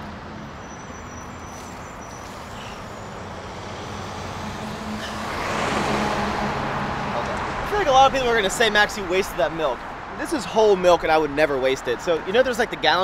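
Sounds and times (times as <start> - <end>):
truck passing close by: 0.0 - 9.8
road traffic drone: 0.0 - 13.0.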